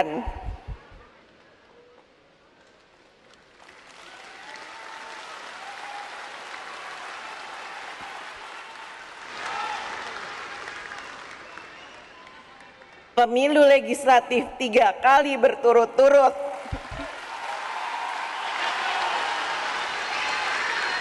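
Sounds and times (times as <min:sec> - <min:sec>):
audience applauding: 0:03.5 - 0:13.1, 0:16.6 - 0:21.0.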